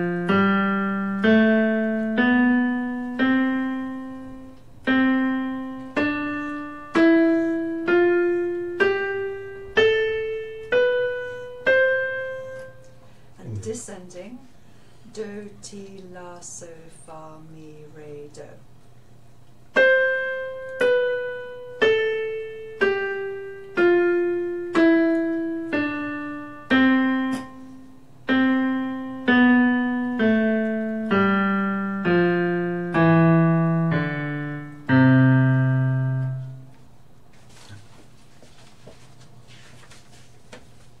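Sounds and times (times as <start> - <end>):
electronic piano descending scale: 0.0 - 13.0, 19.7 - 36.8.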